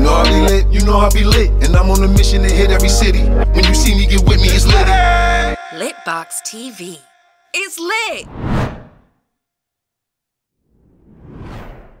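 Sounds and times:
whoosh sound effect: 8.2 - 9.0.

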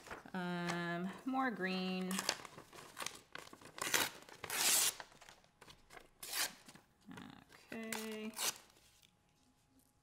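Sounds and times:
paper tearing by hand: 3.8 - 5.1, 6.2 - 6.7, 7.9 - 8.7.

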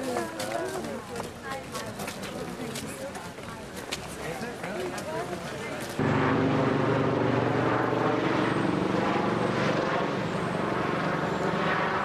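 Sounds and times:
aircraft engine drone: 6.0 - 12.0.

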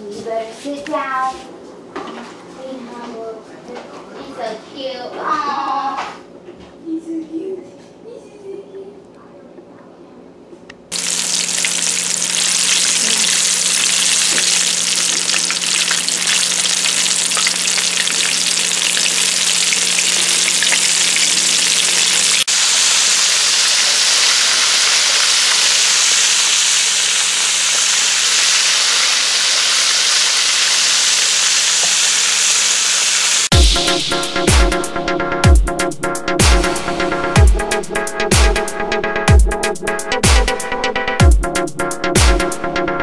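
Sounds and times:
sizzling and crackling frying oil: 10.9 - 34.0.

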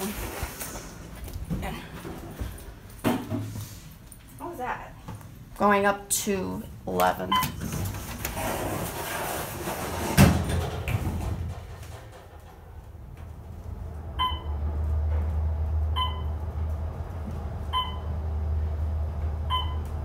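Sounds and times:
elevator low hum: 0.0 - 20.0.

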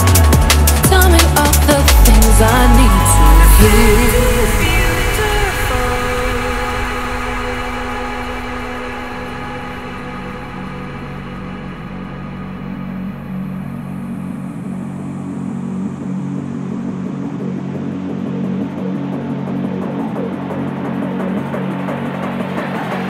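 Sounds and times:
held low synth chords: 0.0 - 22.8.

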